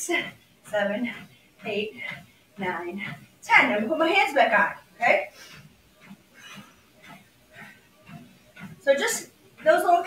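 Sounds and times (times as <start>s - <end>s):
footfalls on treadmill belt: 0.0s - 10.0s.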